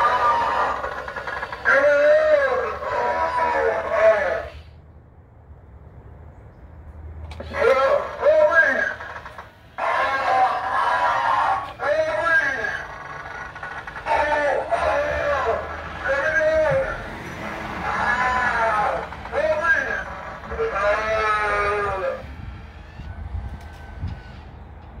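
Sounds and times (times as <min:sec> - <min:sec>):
recorded voice through speaker: 0:01.6 - 0:04.6, 0:07.4 - 0:09.0, 0:09.8 - 0:12.9, 0:14.0 - 0:17.1, 0:17.8 - 0:22.3.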